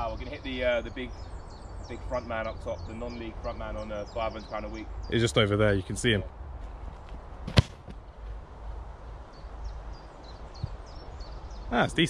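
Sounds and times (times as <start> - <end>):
wind rumbling on microphone: 6.2 - 11.8.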